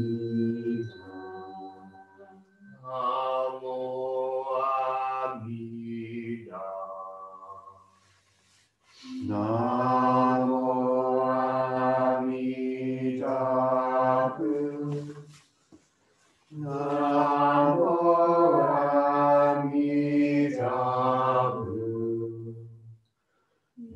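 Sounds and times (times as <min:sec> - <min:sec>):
group chanting in held notes: 0:02.7 - 0:07.7, 0:09.0 - 0:15.0, 0:16.6 - 0:22.6.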